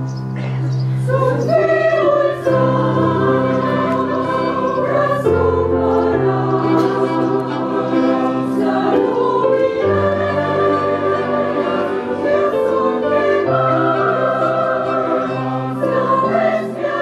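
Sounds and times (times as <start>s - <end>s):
group singing a slow hymn: 0.9s - 17.0s.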